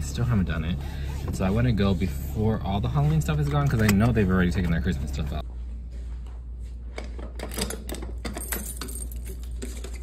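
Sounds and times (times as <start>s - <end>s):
low steady hum: 0.0s - 10.0s
keys jangling: 7.4s - 10.0s.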